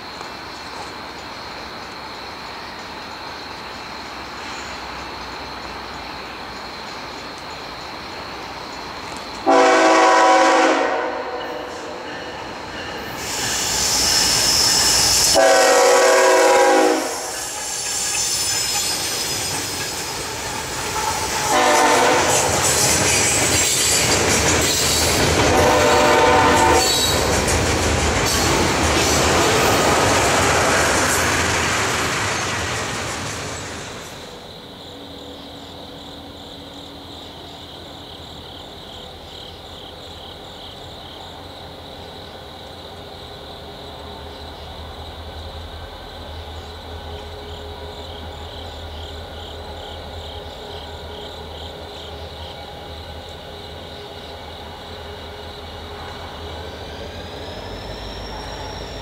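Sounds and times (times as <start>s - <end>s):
train horn blasts: 9.4s - 12.1s, 15.3s - 17.5s, 20.9s - 22.8s, 25.4s - 27.2s
wheels clattering on rail: 17.2s - 34.6s.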